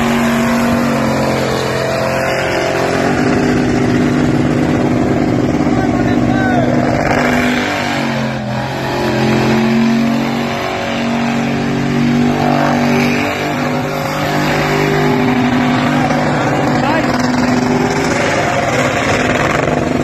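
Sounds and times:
car engine revving high: 0.0s - 20.0s
tyres spinning on pavement: 8.2s - 20.0s.

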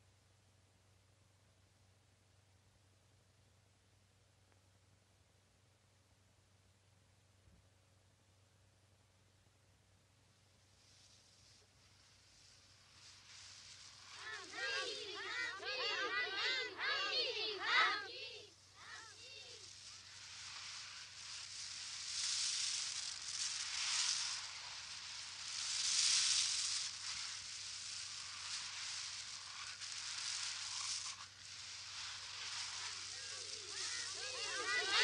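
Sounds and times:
rushing hissing noise: 10.2s - 35.0s.

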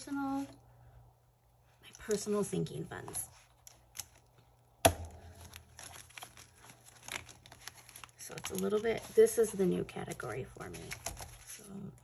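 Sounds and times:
plastic envelopes crinkling: 5.1s - 12.0s.

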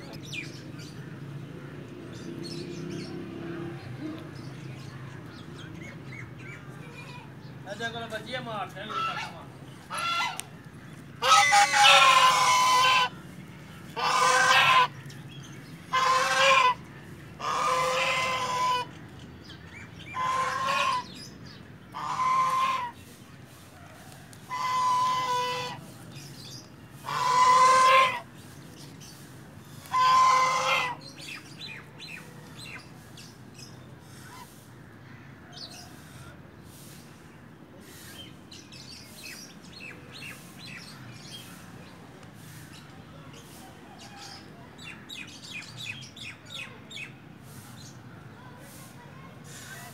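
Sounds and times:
goose honking: 8.8s - 10.4s, 11.2s - 13.2s, 14.0s - 15.0s, 15.9s - 16.8s, 17.4s - 18.9s, 20.1s - 21.1s, 21.9s - 23.0s, 24.4s - 25.8s, 27.0s - 28.3s, 29.8s - 31.0s.

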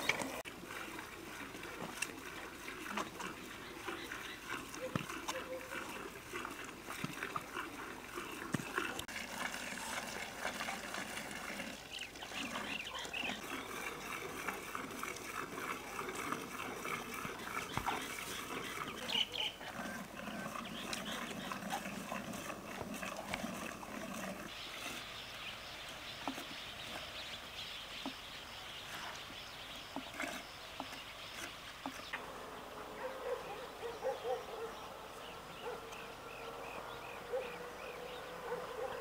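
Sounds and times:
cattle calling: 12.3s - 24.4s.

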